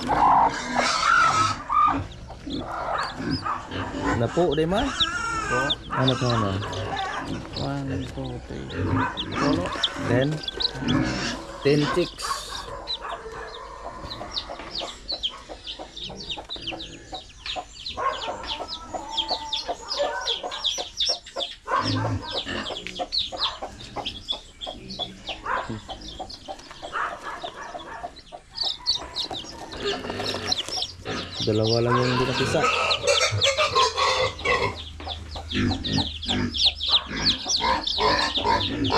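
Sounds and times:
chicks peeping: 0.0s - 38.9s.

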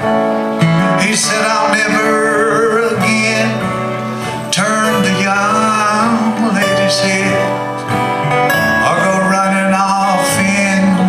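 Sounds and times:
strummed acoustic guitars: 0.0s - 11.0s
man singing: 0.9s - 11.0s.

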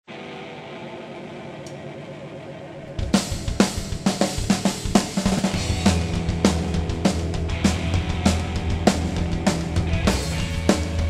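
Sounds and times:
electric guitar chord ringing: 0.1s - 11.0s.

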